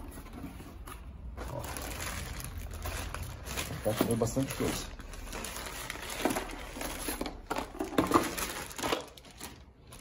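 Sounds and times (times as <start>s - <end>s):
plastic bags crinkling: 1.3s - 10.0s.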